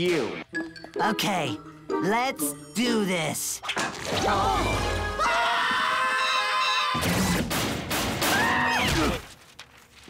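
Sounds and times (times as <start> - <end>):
cartoon music: 0.5 - 3.6.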